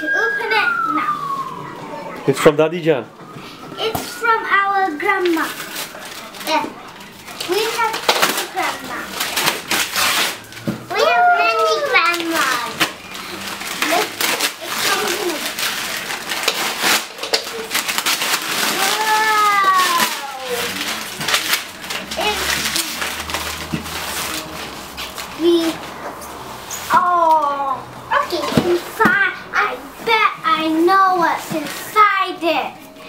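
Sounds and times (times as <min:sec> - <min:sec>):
paper and plastic crinkling: 0:02.4 - 0:27.5, 0:28.1 - 0:33.0
child calling out: 0:10.9 - 0:12.7, 0:18.7 - 0:20.7.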